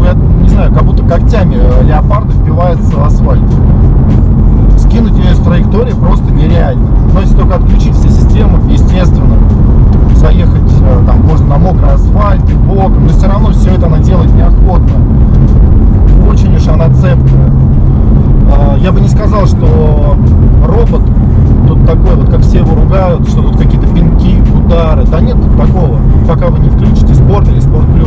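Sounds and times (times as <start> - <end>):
man talking: 0.0 - 3.6, 4.7 - 9.4, 10.1 - 15.0, 16.1 - 17.6, 18.4 - 28.0
car engine and tyre drone: 0.0 - 28.0.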